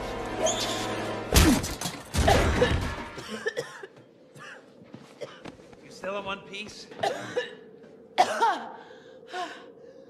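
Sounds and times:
person coughing: 2.2s - 4.6s, 7.0s - 7.6s, 8.2s - 8.8s
breaths: 8.6s - 10.0s.

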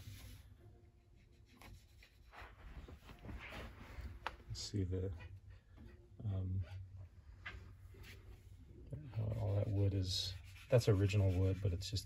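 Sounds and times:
faint handling rustles: 2.2s - 11.2s.

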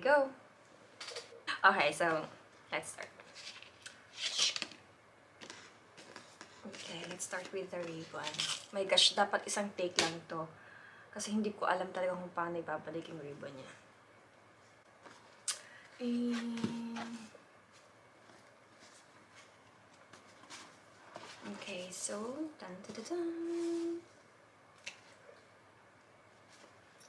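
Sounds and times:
woman humming: 16.0s - 17.4s, 23.0s - 24.1s.

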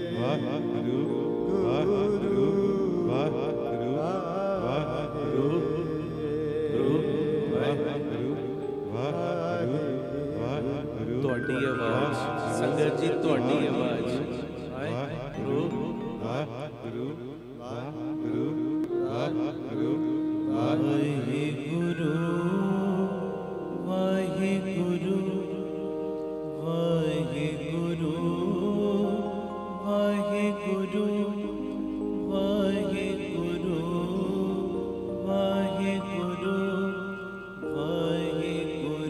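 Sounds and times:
man singing devotional chant: 0.0s - 25.7s, 26.6s - 39.0s
musical accompaniment: 0.0s - 39.0s.

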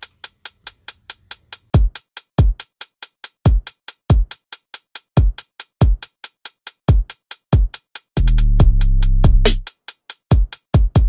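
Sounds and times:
electronic drum beat: 0.0s - 11.0s
hi-hat ticks: 0.0s - 11.0s.

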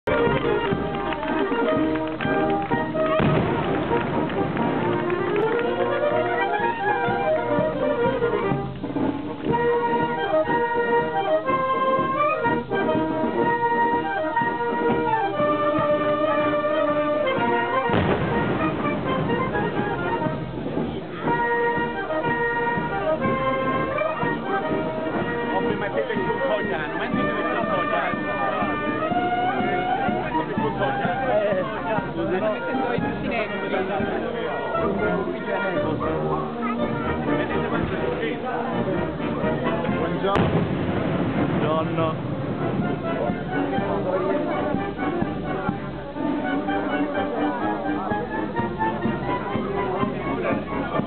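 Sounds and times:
brass band playing festive music: 0.0s - 51.0s
crowd voices: 0.0s - 51.0s.

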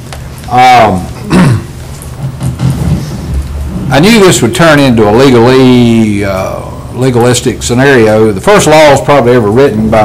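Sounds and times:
low hum of sound system: 0.0s - 10.0s
man clearing his throat: 1.2s - 1.8s.

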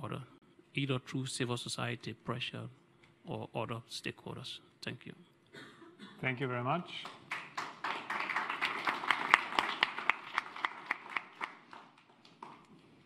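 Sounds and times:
small crowd clapping: 7.0s - 13.0s.

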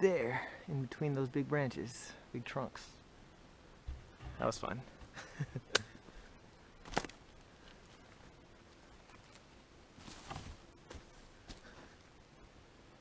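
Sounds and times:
sharp knock: 3.9s - 4.6s
rustling crunch: 6.8s - 12.0s
footsteps on forest-floor litter: 7.6s - 12.0s.

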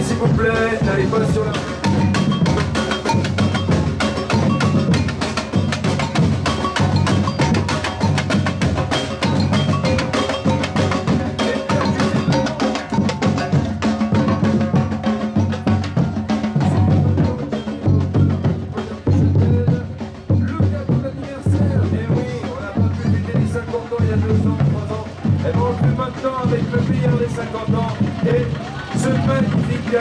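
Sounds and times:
bass drums beaten with mallets: 0.0s - 30.0s
snare drums rattling: 0.0s - 30.0s.

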